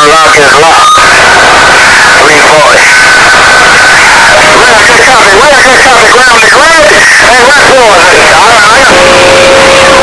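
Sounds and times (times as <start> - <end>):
two-way radio voice: 0.0 - 2.9, 4.2 - 10.0
steady whistle tone: 0.0 - 10.0.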